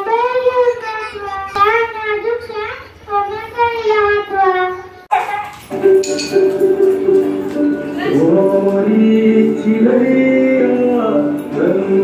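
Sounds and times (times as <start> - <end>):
recorded music: 5.1 - 12.0.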